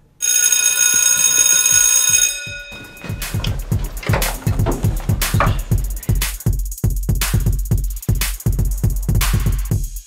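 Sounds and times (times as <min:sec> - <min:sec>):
high bell-like ringing: 0:00.3 - 0:03.6
music with drum beat: 0:02.8 - 0:10.0.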